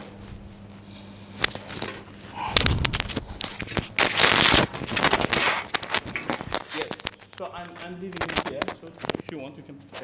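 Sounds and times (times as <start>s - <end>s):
paper rustling: 1.4s - 10.0s.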